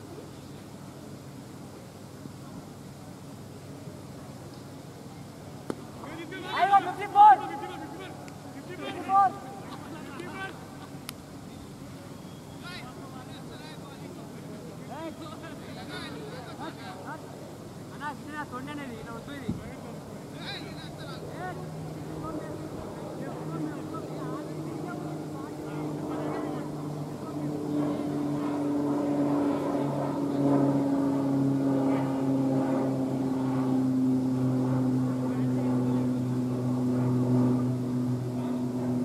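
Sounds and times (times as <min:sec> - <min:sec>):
faint distant voices: 0:00.0 - 0:39.0
engine drone: 0:19.0 - 0:39.0.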